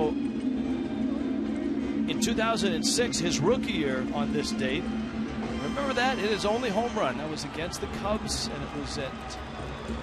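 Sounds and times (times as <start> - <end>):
low even hum: 0.0 - 7.7.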